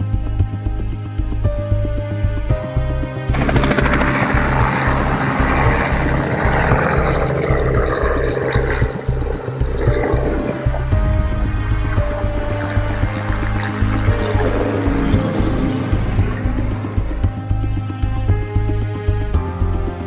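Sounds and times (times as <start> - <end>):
music with steady beat: 0.0 - 20.0
helicopter rotor and engine: 3.3 - 10.3, 11.8 - 17.9.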